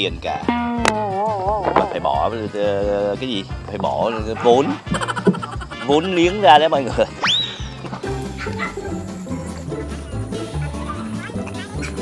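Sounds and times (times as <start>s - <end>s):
background music with steady beat: 0.0s - 12.0s
rising whistle sweep: 7.2s - 7.8s.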